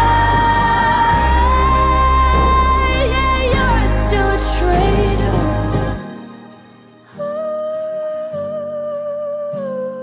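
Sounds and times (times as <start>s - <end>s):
soft low accompaniment: 0.0s - 7.8s.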